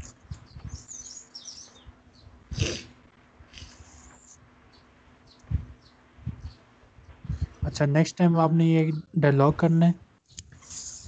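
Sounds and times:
small birds chirping: 0.0 - 2.8, 3.5 - 11.0
faint steady hum: 0.0 - 11.0.

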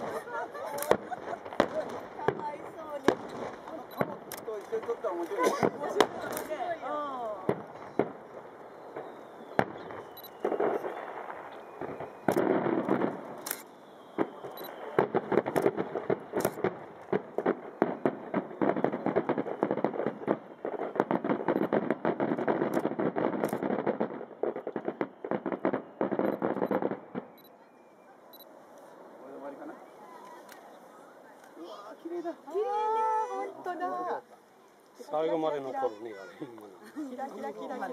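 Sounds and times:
firework crackle: 0.0 - 37.9.

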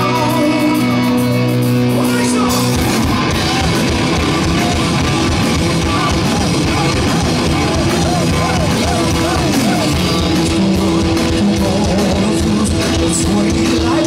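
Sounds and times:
hard rock band playing live: 0.0 - 14.0
bending guitar lines: 2.4 - 11.7
pounding drums: 2.5 - 14.0.

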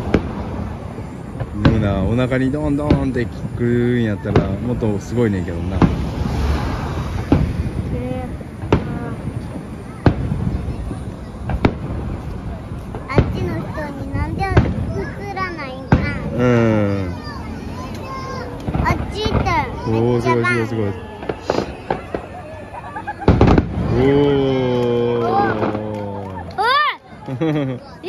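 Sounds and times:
firework boom: 0.0 - 26.4
low rumble of fireworks: 0.0 - 28.0.

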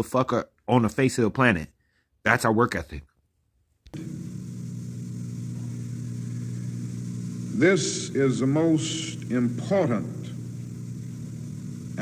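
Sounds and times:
low hum and rumble: 4.0 - 12.0.

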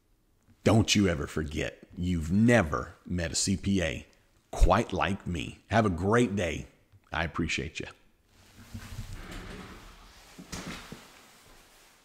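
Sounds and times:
leather chair rustling: 8.3 - 12.0.

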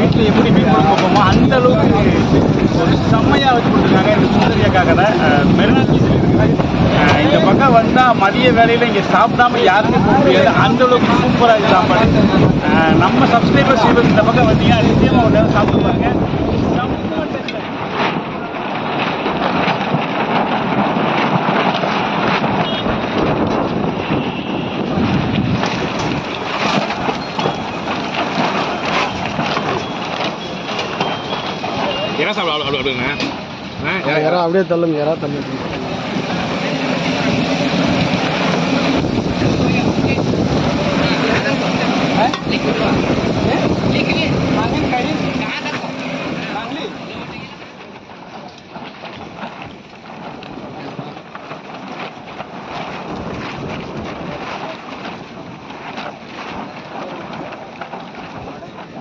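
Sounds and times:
wind buffeting microphone: 0.0 - 59.0
background voices: 34.9 - 47.8.

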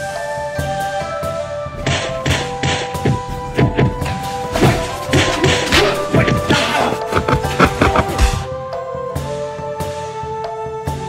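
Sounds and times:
trailer music sustained tones: 1.7 - 8.8.

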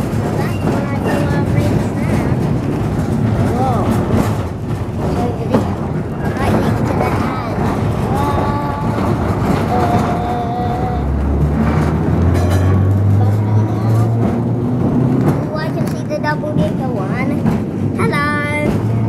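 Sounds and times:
tram motor hum rising: 0.0 - 18.0
tram wheels rumbling on rails: 0.0 - 19.0.

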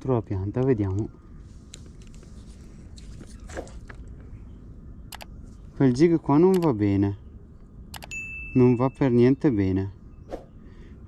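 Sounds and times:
twigs and brush crackling: 0.6 - 4.4.

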